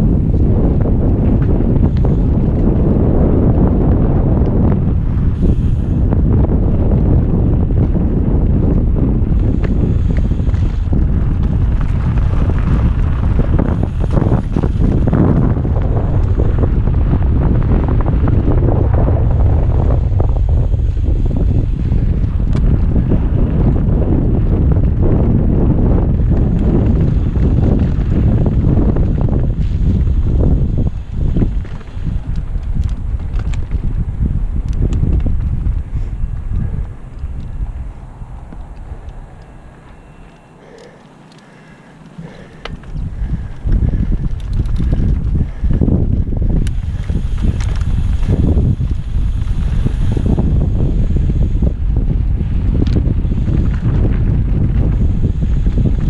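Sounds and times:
bike rattling over rocks: 0.0 - 56.0
wind buffeting camera microphone: 0.0 - 56.0.

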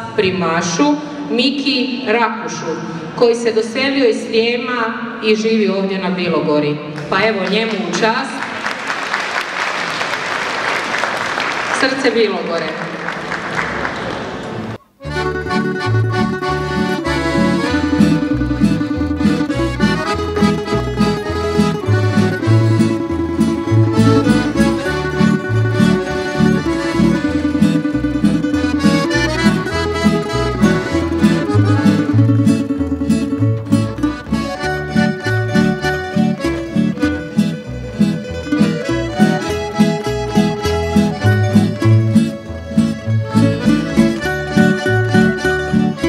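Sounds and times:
accordions playing melody: 14.8 - 46.0
plucked string instruments: 14.8 - 46.0
double bass line: 15.0 - 46.0.

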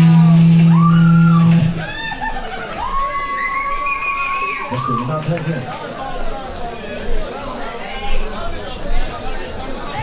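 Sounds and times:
live rock band: 0.0 - 1.9.

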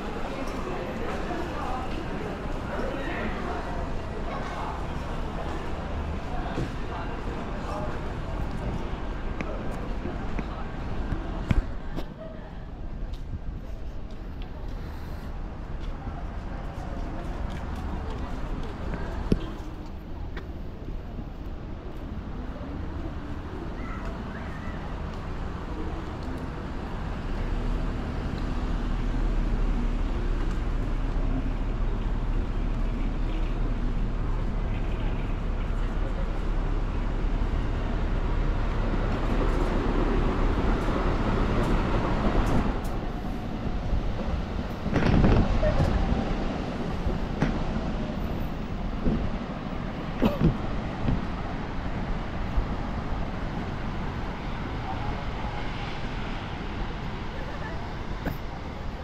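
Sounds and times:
traffic rumble: 0.0 - 59.0.

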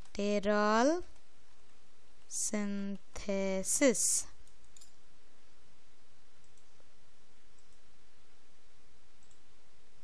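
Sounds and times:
faint hum: 0.0 - 10.0
computer keyboard typing: 4.4 - 5.0.

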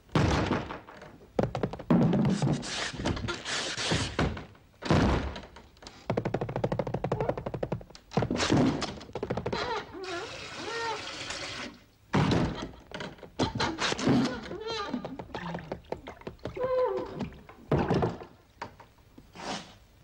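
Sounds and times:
wooden door thunking: 4.2 - 5.7.

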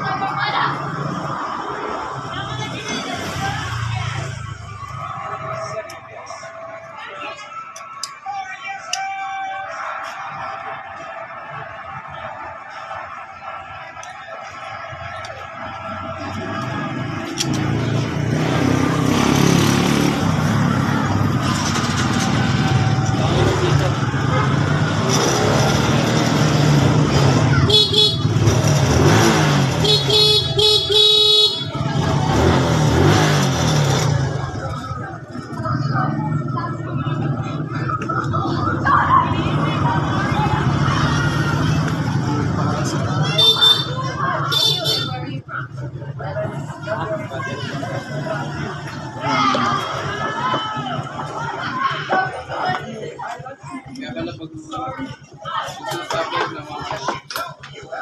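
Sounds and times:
motor vehicle running: 0.0 - 8.2, 9.6 - 58.0.

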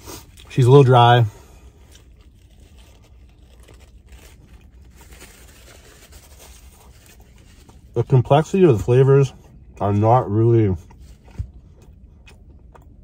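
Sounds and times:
low steady rumble: 0.0 - 13.0
chewing mouth sounds: 10.8 - 13.0.

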